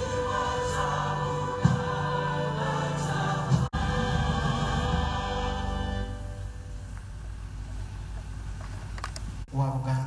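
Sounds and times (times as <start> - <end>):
choir singing a hymn: 0.0 - 6.8.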